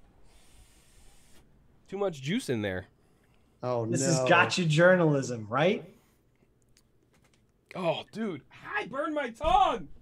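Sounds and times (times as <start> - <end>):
airy exhaled hiss: 0.2 - 1.4.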